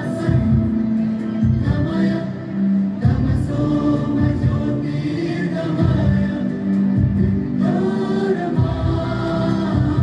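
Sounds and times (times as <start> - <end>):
choir singing devotional song: 0.0 - 10.0
instrumental accompaniment with beat: 0.0 - 10.0.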